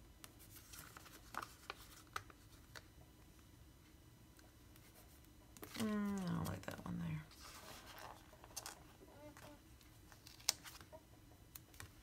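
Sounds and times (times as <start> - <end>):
low room hum: 0.0 - 12.0
paper stickers rustling: 0.4 - 2.9.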